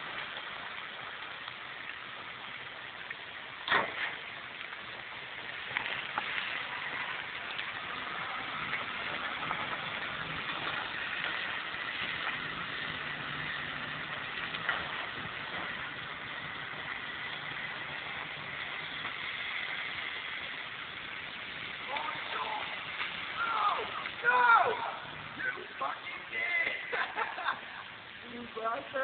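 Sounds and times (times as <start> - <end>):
steady hiss: 0.0 - 29.0.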